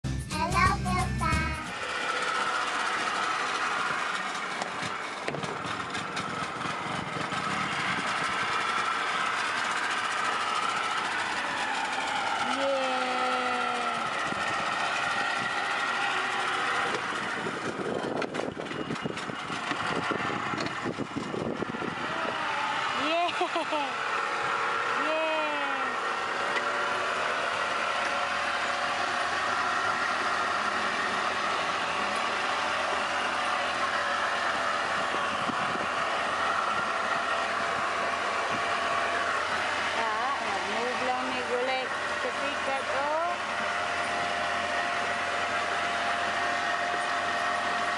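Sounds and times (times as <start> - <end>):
outboard motor running: 0.0 - 47.9
person's voice: 0.3 - 1.8.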